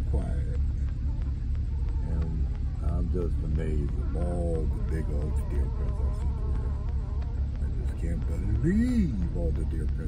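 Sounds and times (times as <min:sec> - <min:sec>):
engine and tyres rumbling: 0:00.0 - 0:10.0.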